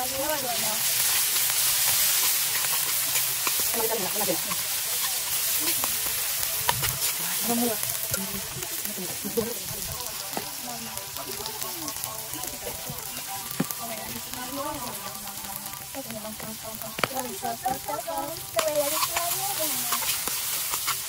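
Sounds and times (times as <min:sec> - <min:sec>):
vegetables sizzling in oil: 0:00.0 - 0:21.0
utensil clicking against pan: 0:01.4 - 0:06.0, 0:18.5 - 0:21.0.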